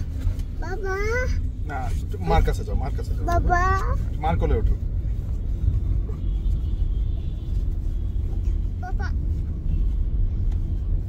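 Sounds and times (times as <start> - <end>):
road and engine noise in car: 0.0 - 11.0.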